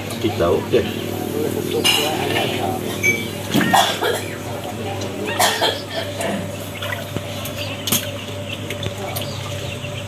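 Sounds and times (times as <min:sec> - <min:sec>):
background voices: 0:00.0 - 0:07.5
person coughing: 0:03.6 - 0:04.4, 0:05.3 - 0:06.4.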